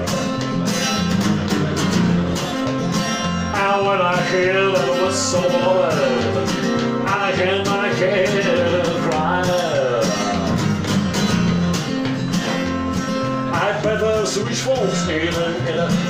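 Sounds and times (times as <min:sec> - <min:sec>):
acoustic guitar strumming: 0:00.0 - 0:16.0
man singing: 0:03.5 - 0:10.7, 0:13.5 - 0:16.0.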